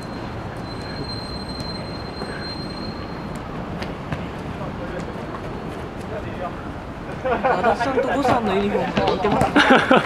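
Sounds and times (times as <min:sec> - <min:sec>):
rumbling city background noise: 0:00.0 - 0:10.0.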